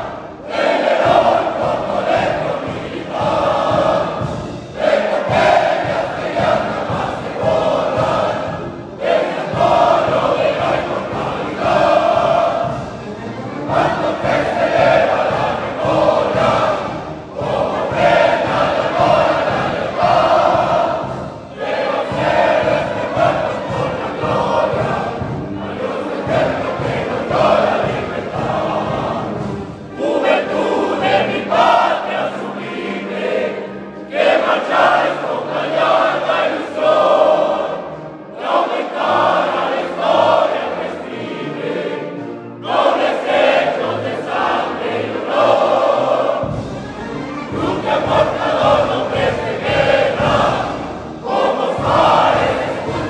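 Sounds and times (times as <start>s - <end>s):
young men singing in chorus: 0.0s - 12.9s, 13.7s - 37.8s, 47.5s - 53.0s.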